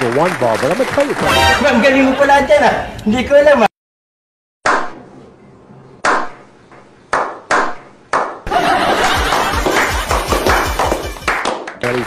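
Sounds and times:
hand claps: 7.1s - 8.5s, 9.1s - 12.0s.

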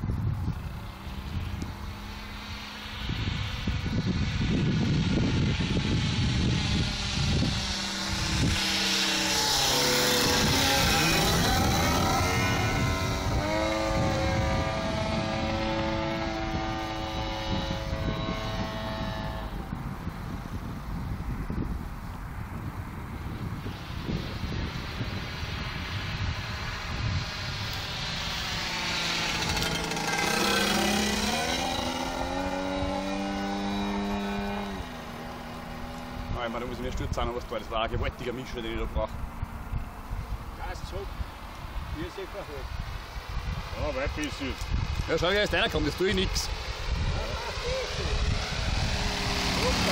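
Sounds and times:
model airplane engine passing: 0.2s - 49.9s.

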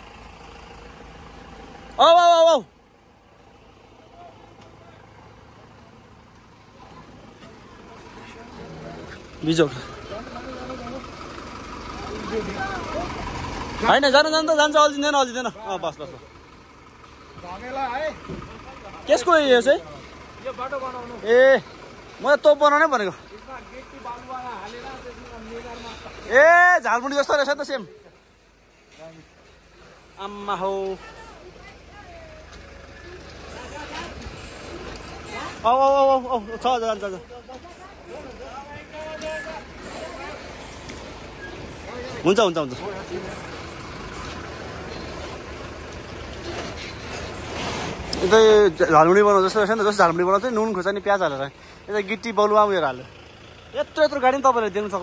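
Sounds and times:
vehicle engine rumble: 0.0s - 55.0s.

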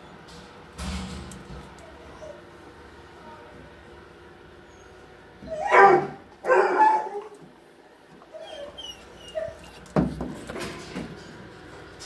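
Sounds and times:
dog whining: 4.7s - 7.4s, 8.2s - 9.9s
dog barking: 5.6s - 7.3s.

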